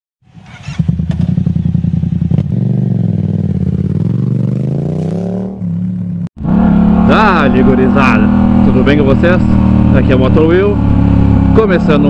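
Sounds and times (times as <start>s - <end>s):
motorcycle engine running: 0.3s - 12.0s.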